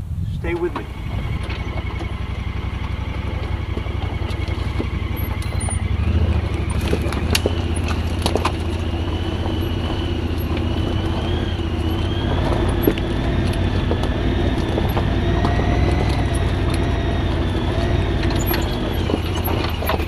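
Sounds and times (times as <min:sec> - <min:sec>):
high whine: 0:00.0 - 0:20.0
utility vehicle engine running: 0:00.0 - 0:20.0
knocks and rattles: 0:00.8 - 0:20.0.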